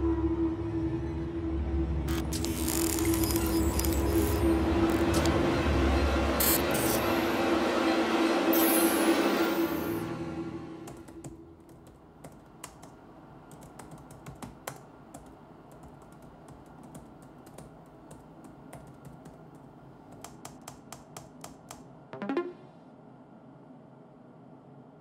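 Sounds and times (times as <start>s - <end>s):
laptop keyboard typing: 2.1s - 5.4s, 10.9s - 21.8s.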